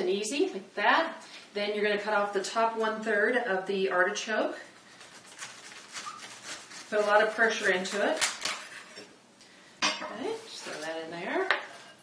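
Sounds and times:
knife sawing through artichoke: 4.9 - 9.0.

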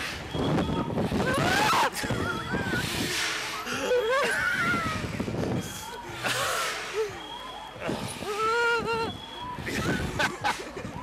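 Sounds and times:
wind rushing on microphone: 0.0 - 3.2, 4.2 - 5.8
riders yelling and whooping: 0.6 - 10.2.

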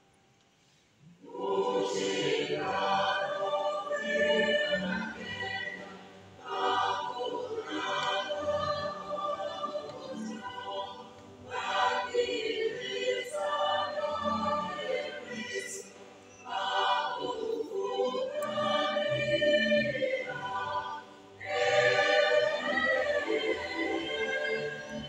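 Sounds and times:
choir singing a hymn: 1.2 - 25.0.

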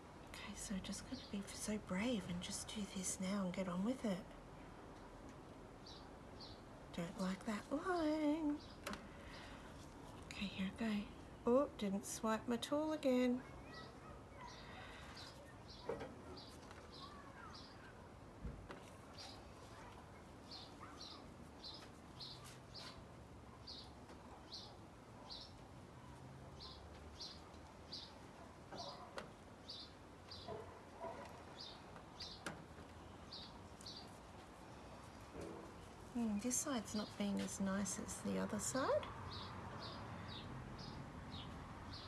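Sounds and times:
bird chirping: 26.6 - 34.2.

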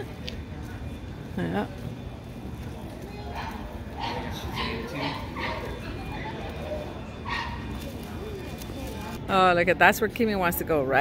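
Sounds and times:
low street noise: 0.0 - 11.0
people talking nearby: 0.0 - 11.0.

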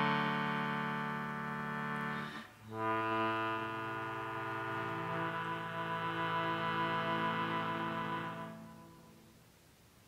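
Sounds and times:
concertina playing chords: 0.0 - 9.2.

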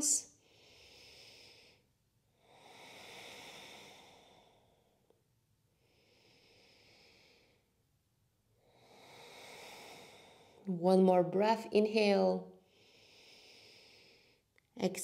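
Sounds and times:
woman breathing through nose: 0.4 - 5.1, 5.8 - 7.7, 8.6 - 10.7, 12.6 - 14.5.

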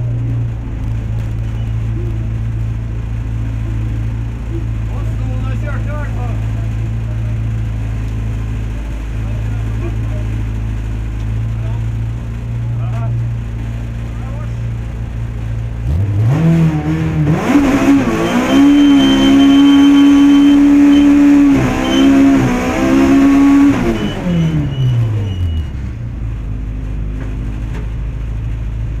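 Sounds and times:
rally car engine revving: 0.0 - 26.4.

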